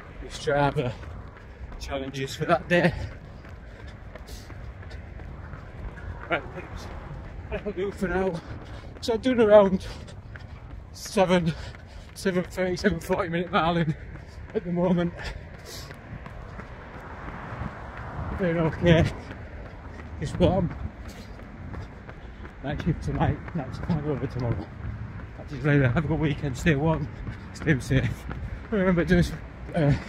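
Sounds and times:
wind rumble on microphone: 0.0 - 11.0, 15.2 - 30.0
running footsteps on pavement: 0.0 - 30.0.

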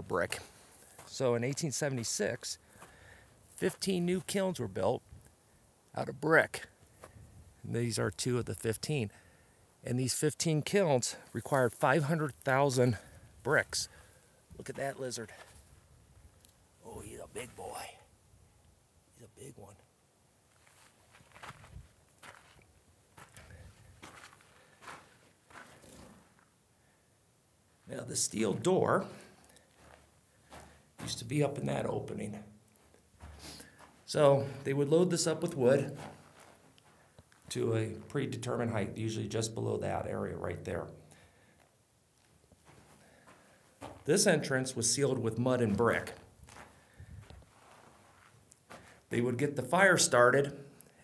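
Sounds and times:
footsteps on gravelly dirt: 0.1 - 4.4, 20.5 - 26.5, 29.1 - 32.2, 32.8 - 38.1, 42.2 - 44.6, 45.4 - 49.1.

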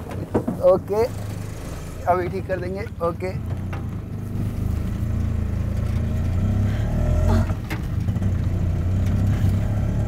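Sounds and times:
auto-rickshaw engine running: 0.0 - 10.0
voice: 0.5 - 1.2, 2.0 - 3.4.

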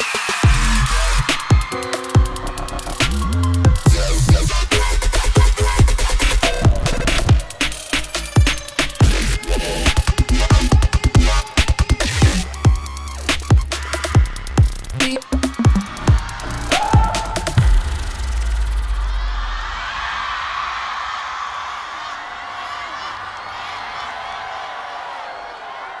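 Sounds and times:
audience cheering: 0.0 - 5.8, 14.9 - 26.0
bass-heavy electronic dance music: 0.0 - 19.2.

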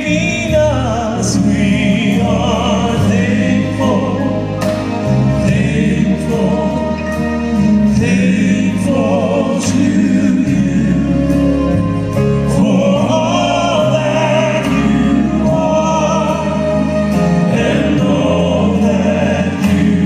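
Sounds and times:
bass line: 0.0 - 20.0
male vocal quartet singing in harmony: 0.0 - 20.0.

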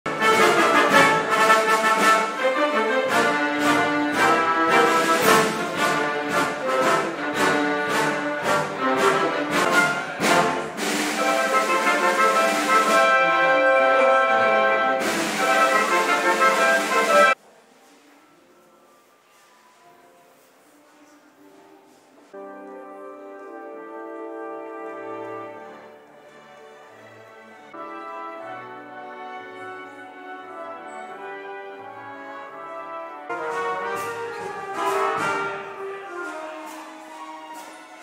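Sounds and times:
piano: 0.0 - 38.0
strings: 0.1 - 17.4, 22.4 - 38.0.

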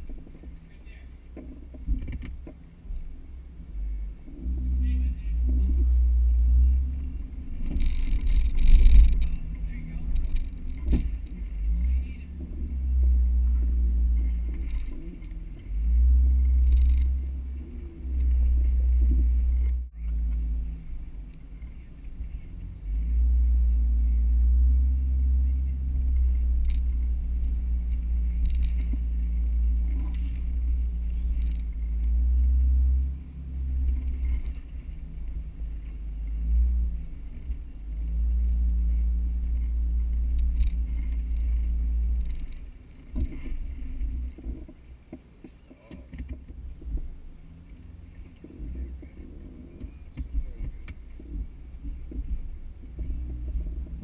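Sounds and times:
car engine rumbling: 0.0 - 54.0.

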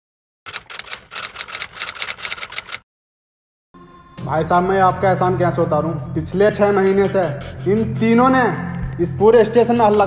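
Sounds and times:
typewriter keystroke clicks: 0.5 - 2.8.

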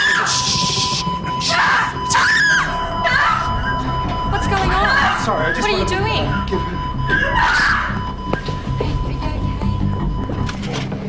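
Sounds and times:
background music: 0.0 - 11.0.

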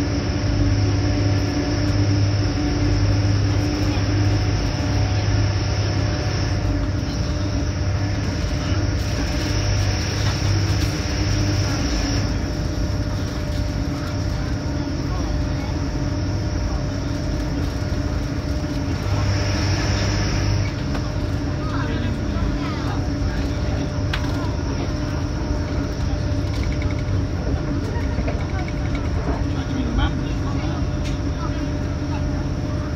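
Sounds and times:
train engine hum: 0.0 - 32.9
wheel-on-rail rumble: 0.0 - 32.9.

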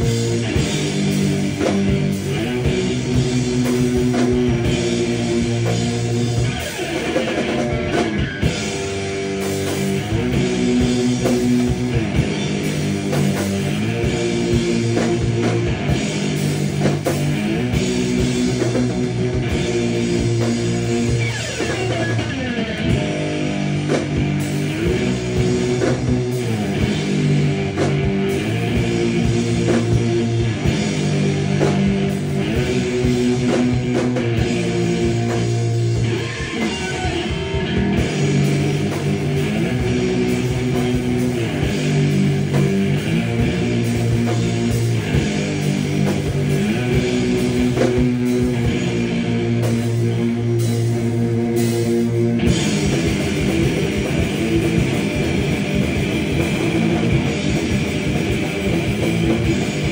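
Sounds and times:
distorted electric guitar riff: 0.0 - 59.9
drum kit: 0.0 - 59.9.

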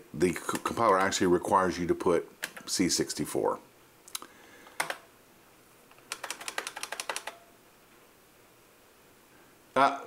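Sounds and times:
computer keyboard typing: 0.5 - 1.2, 4.8 - 5.1, 5.9 - 7.5.

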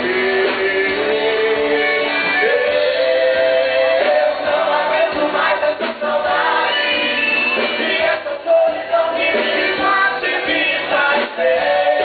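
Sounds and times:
band accompaniment: 0.0 - 12.0
voices singing together: 0.0 - 12.0.

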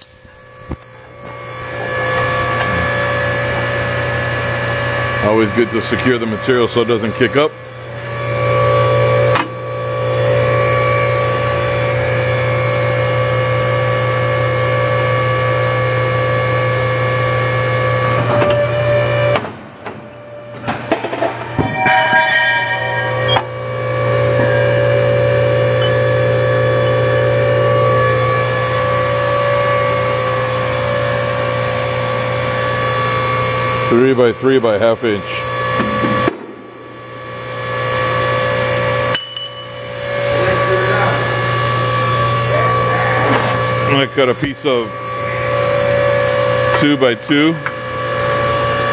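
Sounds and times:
machine shearing steel: 0.0 - 19.4, 20.9 - 48.9
hydraulic machine humming: 0.0 - 48.9.

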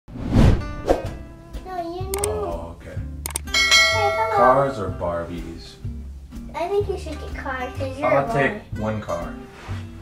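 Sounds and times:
bright bell tone ringing: 3.5 - 4.8
music with bell-like chimes: 3.5 - 4.9.

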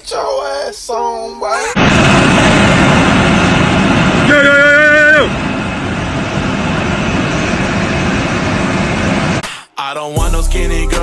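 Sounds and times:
factory machinery running: 1.8 - 9.4.

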